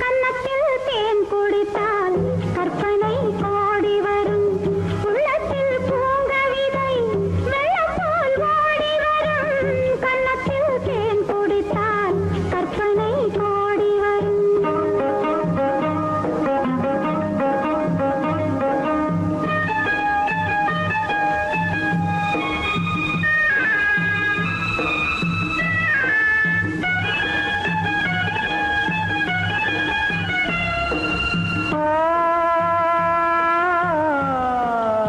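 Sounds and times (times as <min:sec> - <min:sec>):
instrumental melody: 0:00.0 - 0:34.7
bass and drum beat: 0:09.3 - 0:35.0.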